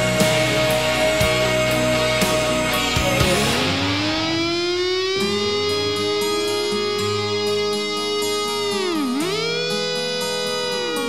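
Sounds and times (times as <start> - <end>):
bass and drum beat: 0.0 - 4.5
sustained electric guitar note: 0.0 - 11.0.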